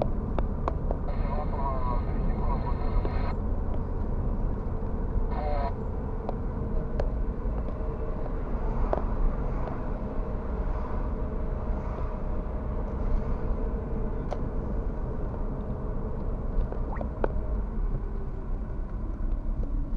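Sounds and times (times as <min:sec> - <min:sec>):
car road and engine rumble: 0:00.0 - 0:19.9.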